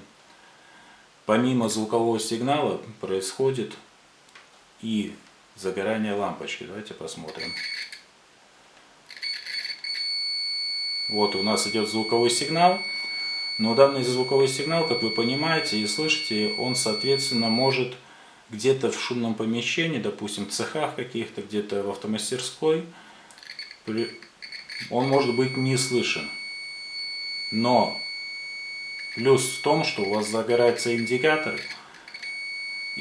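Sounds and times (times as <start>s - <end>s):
multimeter continuity beep: 7.3s - 8.0s, 9.1s - 17.9s, 23.4s - 33.0s.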